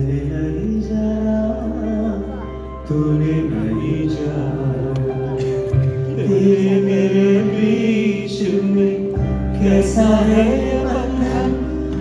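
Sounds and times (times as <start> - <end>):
live band music: 0.1 - 12.0.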